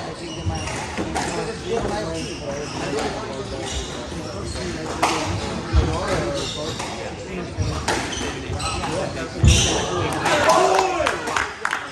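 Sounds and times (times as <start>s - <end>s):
spectator chatter: 0.0s - 11.9s.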